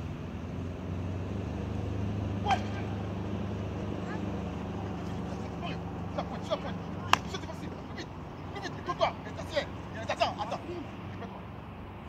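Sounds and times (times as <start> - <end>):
steady low hum: 0.0 - 12.0
person shouting: 2.4 - 3.0.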